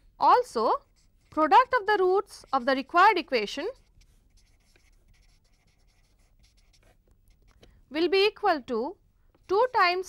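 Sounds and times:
marker pen scratching on paper: 0.3 - 7.7, 9.3 - 10.0.

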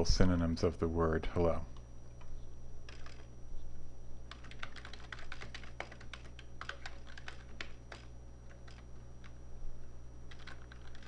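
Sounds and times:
computer keyboard typing: 2.9 - 3.3, 4.3 - 9.4, 10.3 - 11.0.

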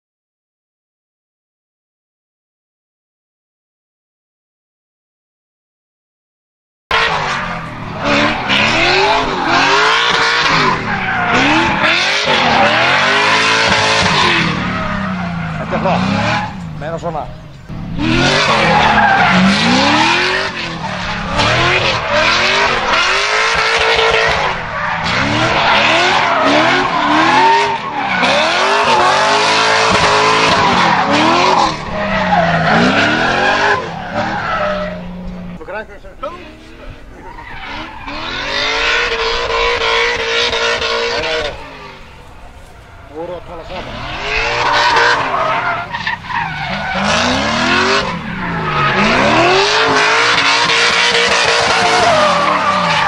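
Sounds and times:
car engine revving: 6.9 - 53.0
tyres screeching: 6.9 - 53.0.

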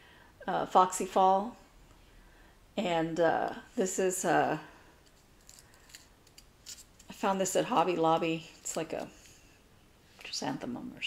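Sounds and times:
light rustling in hands: 5.0 - 9.5.

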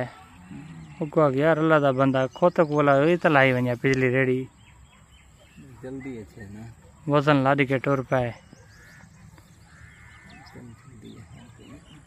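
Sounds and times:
long bird call: 8.4 - 12.0.

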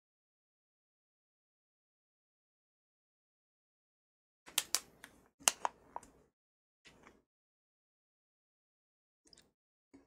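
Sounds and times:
sharp clicks and taps: 4.5 - 6.2.

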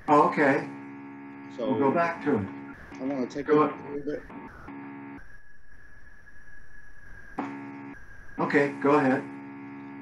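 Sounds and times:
low hum: 3.9 - 8.8
high-pitched electronic tone: 4.0 - 8.8.

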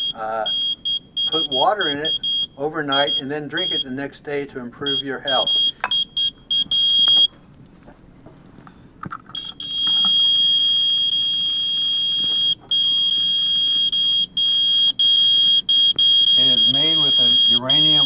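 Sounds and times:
radiation meter alarm tone: 0.0 - 4.1, 4.8 - 7.4, 9.4 - 18.0
short beeps: 9.4 - 18.0.

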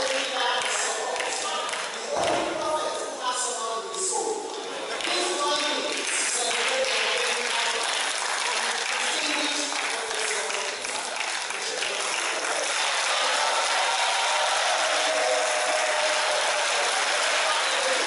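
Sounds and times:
crowd voices: 1.9 - 6.4, 8.2 - 18.0
audience applauding: 4.9 - 18.0.

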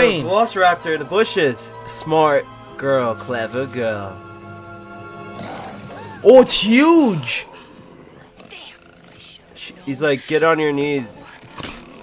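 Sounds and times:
monster growling: 5.3 - 12.0.

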